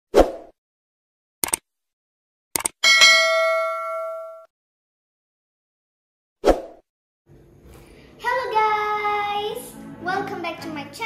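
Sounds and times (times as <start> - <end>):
quick double clicks: 1.4 - 1.6, 2.5 - 2.8
notification bell chime: 2.8 - 4.5.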